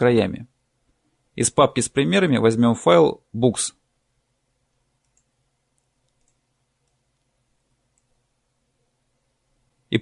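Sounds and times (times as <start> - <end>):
computer mouse clicks: 5.0 - 8.2.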